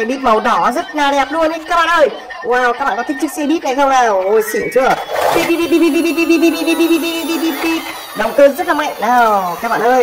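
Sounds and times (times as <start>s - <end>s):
toy bus warbling electronic beep: 0.8s - 10.0s.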